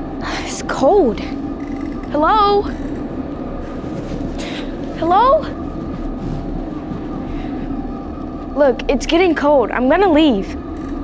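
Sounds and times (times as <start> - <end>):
steady drone with low hum: 0.0 - 11.0.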